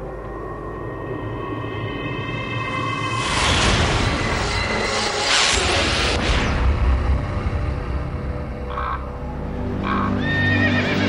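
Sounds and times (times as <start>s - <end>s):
low background music: 6.1s - 11.0s.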